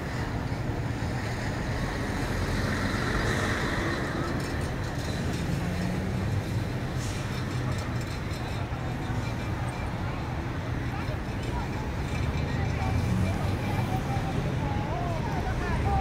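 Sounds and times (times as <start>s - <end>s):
road traffic noise: 0.0s - 16.0s.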